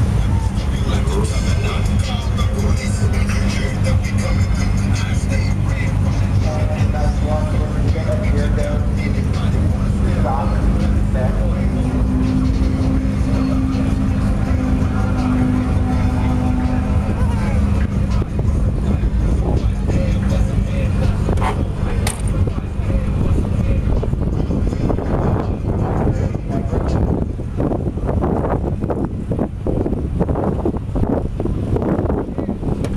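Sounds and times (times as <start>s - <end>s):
car engine idling: 0.0s - 32.9s
car door shutting: 21.3s - 22.4s.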